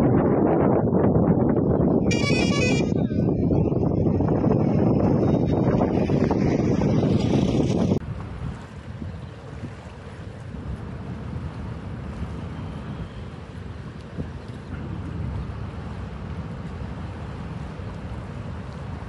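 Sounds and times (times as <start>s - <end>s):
choppy water: 0.0s - 19.0s
wind on microphone: 0.0s - 19.0s.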